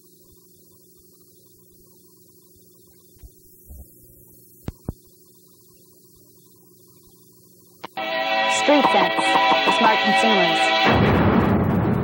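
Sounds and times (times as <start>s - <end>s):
electrical mains hum: 0.0s - 10.9s
soft thumps: 4.6s - 5.0s.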